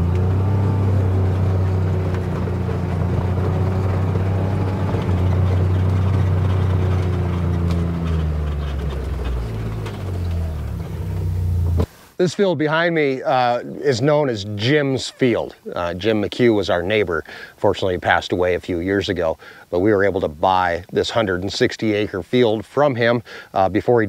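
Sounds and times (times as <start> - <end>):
vehicle engine running: 0.0 - 11.9.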